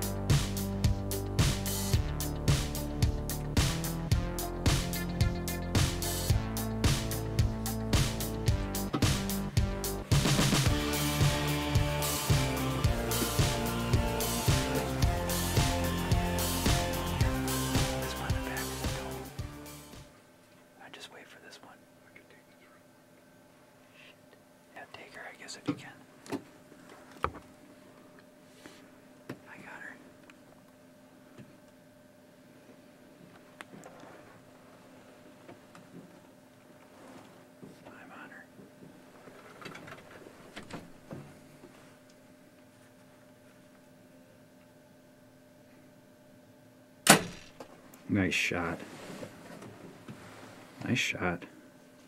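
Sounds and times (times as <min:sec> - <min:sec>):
bow string crack: 0:47.0 - 0:47.7.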